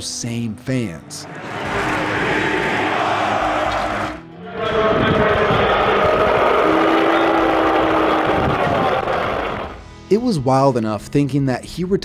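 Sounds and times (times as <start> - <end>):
stadium crowd booing: 1.2 - 9.8.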